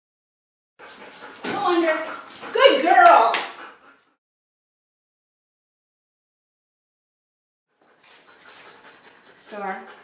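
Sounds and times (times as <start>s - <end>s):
dog panting: 0.8s - 4.2s, 7.7s - 10.0s.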